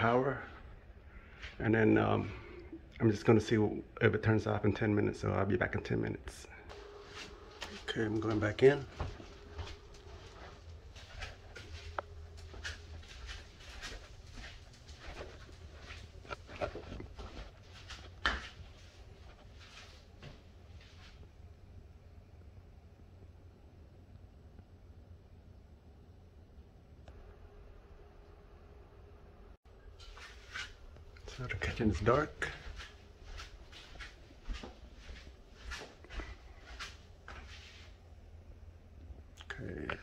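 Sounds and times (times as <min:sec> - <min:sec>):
low steady hum: 0:00.0 - 0:40.0
footsteps: 0:06.7 - 0:21.3, 0:29.9 - 0:38.0.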